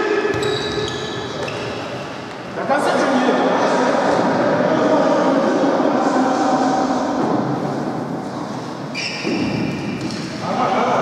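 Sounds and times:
players calling in echoing hall: 0.0s - 11.0s.

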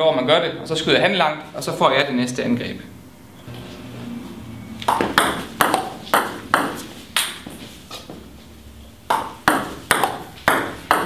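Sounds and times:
table tennis ball clicking: 9.1s - 11.0s.

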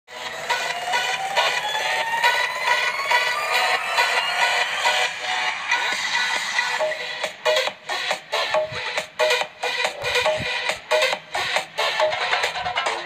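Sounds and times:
rising tone: 0.1s - 7.0s
pop dance music on small speakers: 0.1s - 13.0s.

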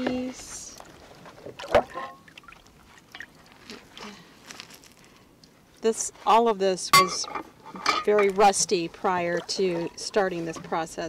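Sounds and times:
liquid sloshing and dripping in a tub: 0.0s - 4.7s, 7.0s - 11.0s
cast iron pieces clunking: 1.7s - 2.2s, 6.9s - 8.5s.

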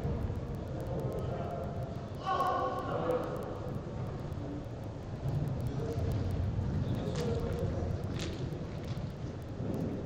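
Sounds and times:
low rumble of indoor hall: 0.0s - 10.0s.

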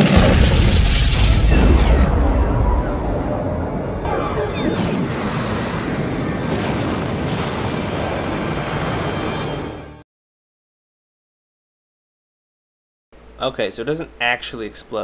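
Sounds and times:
explosion rumble: 0.0s - 9.5s
sci-fi soundtrack music: 1.4s - 6.5s.

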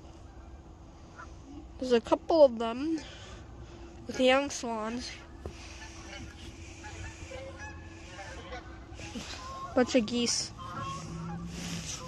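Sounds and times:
geese honking: 0.1s - 1.7s, 3.0s - 12.0s
low wind rumble on microphone: 5.6s - 12.0s.

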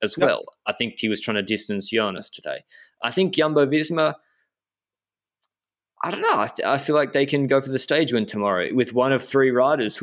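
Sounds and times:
man speaking: 0.0s - 4.2s, 6.0s - 10.0s.

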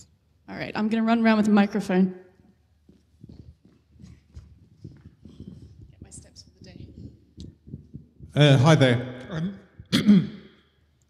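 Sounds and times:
footsteps thudding: 2.9s - 8.4s
microphone handling noise: 3.2s - 8.9s.

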